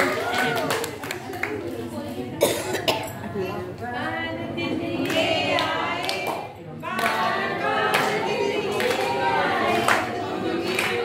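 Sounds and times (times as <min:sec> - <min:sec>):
people talking: 0:00.0 - 0:11.0
sharp coughs: 0:02.4 - 0:03.2.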